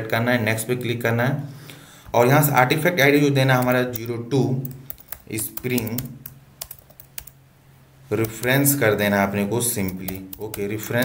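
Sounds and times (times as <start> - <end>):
faint steady hum: 0.0 - 11.0
keyboard typing clicks: 3.6 - 7.4, 8.2 - 9.0, 9.8 - 11.0.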